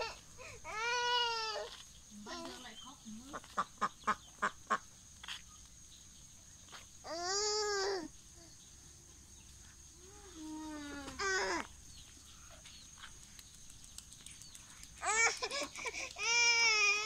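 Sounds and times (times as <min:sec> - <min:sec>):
toddler whining: 0:00.0 - 0:01.8, 0:07.0 - 0:08.1, 0:10.1 - 0:11.7, 0:15.0 - 0:17.0
quick sharp clicks: 0:13.0 - 0:15.0.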